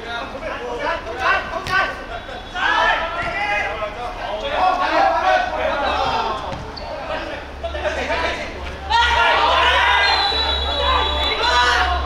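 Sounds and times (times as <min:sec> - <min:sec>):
men shouting: 0:01.1 - 0:06.4, 0:08.8 - 0:12.0.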